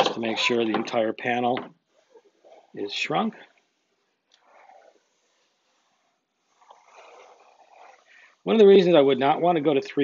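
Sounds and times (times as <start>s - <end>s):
iron swishing over fabric: 1.8s - 10.0s.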